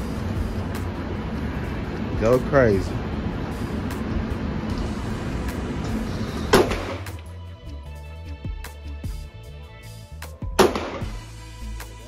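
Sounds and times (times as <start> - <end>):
background music: 0.0 - 12.0
steady background rush: 0.0 - 12.0
handgun shot: 6.5 - 7.2, 10.6 - 11.2.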